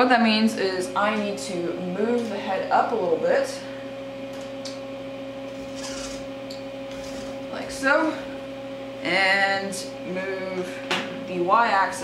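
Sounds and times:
milling machine humming and whining: 0.0s - 12.0s.

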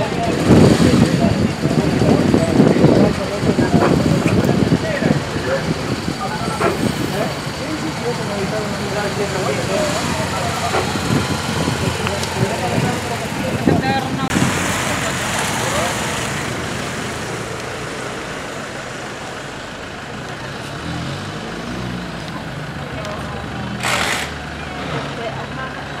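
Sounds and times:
background voices: 0.0s - 26.0s
motorcycle engines pulling away: 0.0s - 26.0s
street traffic noise: 0.0s - 26.0s.

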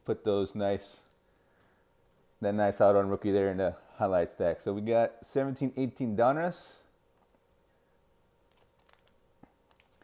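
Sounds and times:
foil wrapper crinkling: 8.4s - 10.0s.

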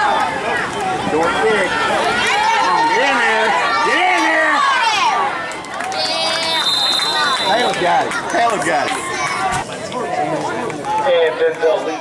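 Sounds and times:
spectators shouting: 0.0s - 12.0s
referee's whistle blast: 6.4s - 7.7s.

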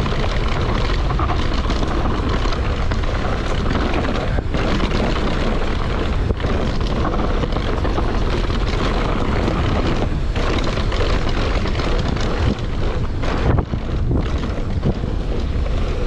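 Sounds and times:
bike rattling: 0.0s - 16.0s
tyres rumbling on dirt: 0.0s - 16.0s
wind rushing over microphone: 0.0s - 16.0s.

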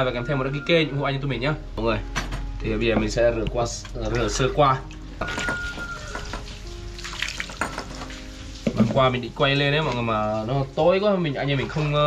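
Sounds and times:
water splashing over meat: 4.0s - 10.4s.

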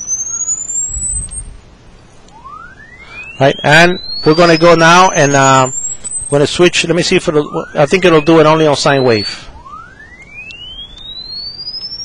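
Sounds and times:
rising sine-wave tone: 0.0s - 1.7s, 2.3s - 12.0s.

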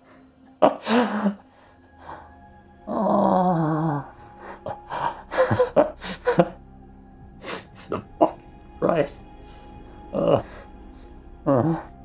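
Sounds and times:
man laughing: 4.4s - 6.6s.

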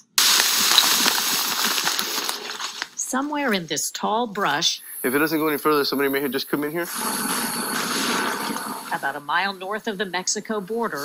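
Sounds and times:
dry grass rustling and crackling: 0.2s - 3.0s.

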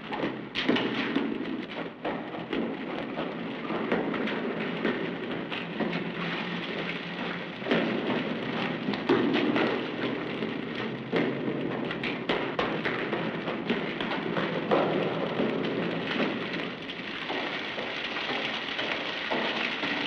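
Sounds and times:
footfalls in water: 0.0s - 20.0s
water running and splashing: 0.0s - 20.0s.

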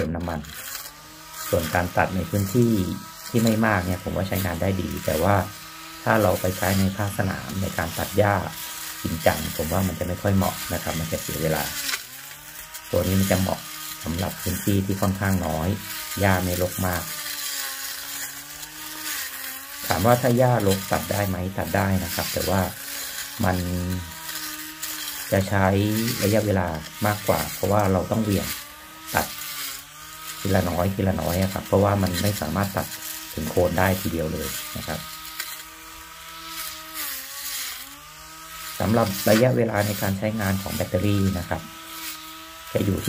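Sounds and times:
grass trimmer motor whine: 0.0s - 43.0s
trimmer head cutting grass: 0.0s - 43.0s.

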